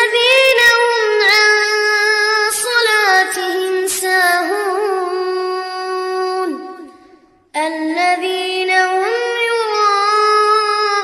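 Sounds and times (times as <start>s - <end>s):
child reciting in melodic chant: 0.0s - 11.0s.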